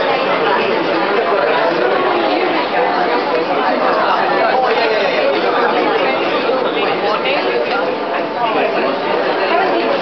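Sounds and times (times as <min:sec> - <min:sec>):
indistinct chatter of crowd: 0:00.0 - 0:10.0.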